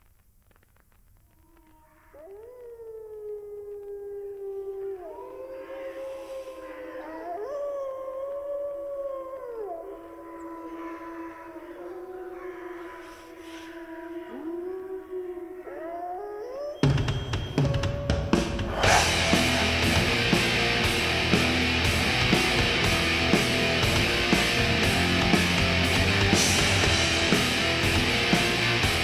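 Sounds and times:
wolves howling: 1.4s - 29.0s
black metal band playing: 16.9s - 29.0s.

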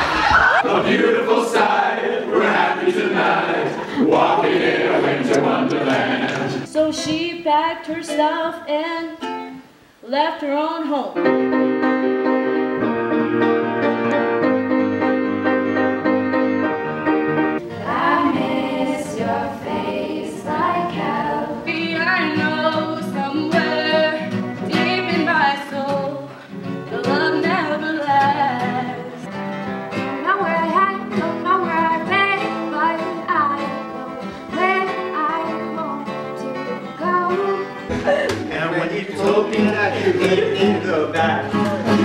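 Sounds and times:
acoustic guitar: 0.0s - 42.0s
woman singing: 6.7s - 9.4s, 17.9s - 26.3s, 26.9s - 29.2s, 30.0s - 38.4s.

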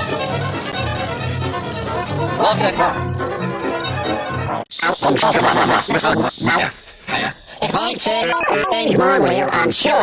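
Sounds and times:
effect-altered voice: 4.8s - 9.8s.

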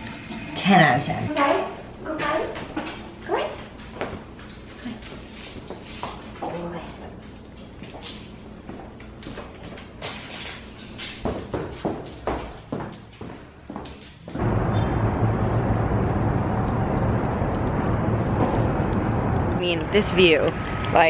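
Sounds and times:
footsteps on carpeted stairs: 11.2s - 14.4s
low outdoor rumble: 14.3s - 21.0s.

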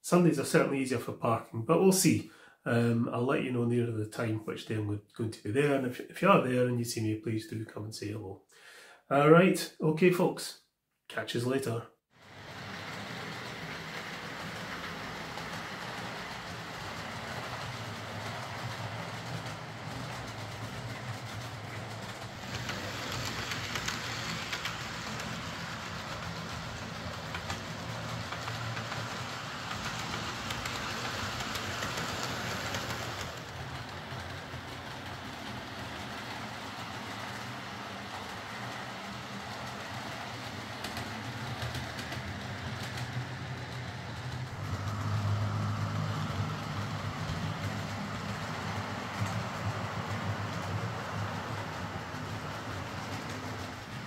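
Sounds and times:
model train motor hum: 12.2s - 54.0s
wheel noise on track: 12.2s - 54.0s.

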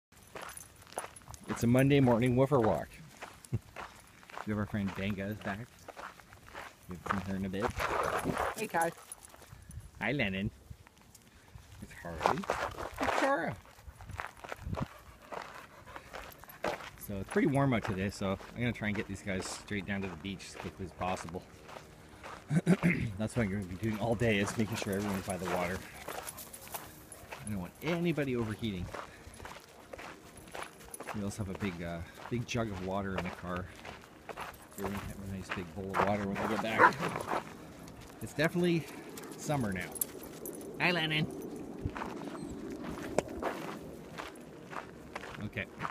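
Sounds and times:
footsteps on gravel: 0.2s - 9.6s, 10.5s - 45.9s.

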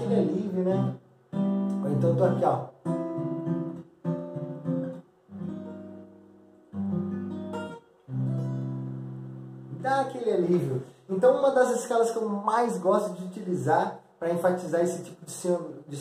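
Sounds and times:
man's voice: 0.0s - 1.0s, 1.8s - 2.8s, 9.7s - 16.0s
acoustic guitar chords ringing: 0.0s - 10.2s.

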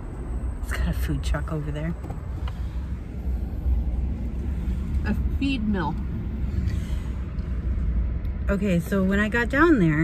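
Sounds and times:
truck engine and road rumble: 0.0s - 10.0s.

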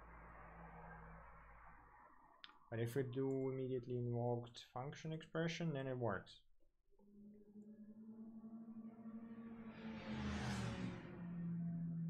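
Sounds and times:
low hum: 0.0s - 4.5s, 6.9s - 12.0s.

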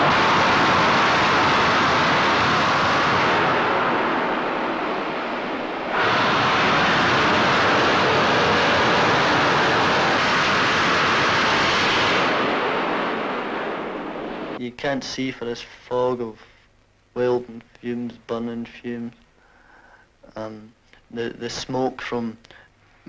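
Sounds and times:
loud rushing shipyard work noise: 0.0s - 14.6s.

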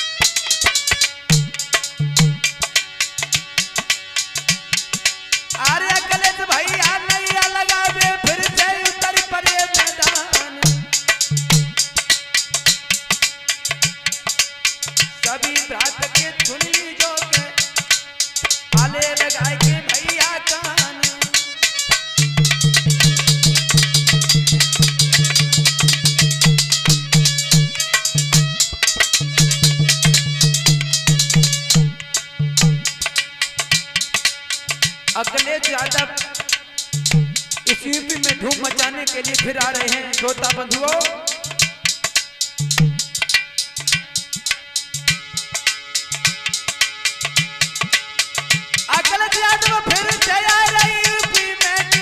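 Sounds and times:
harmonium: 0.0s - 52.0s
fast drum beat: 0.2s - 52.0s.

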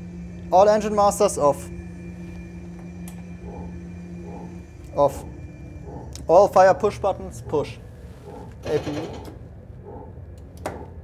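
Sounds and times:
cockpit low hum: 0.0s - 11.0s.

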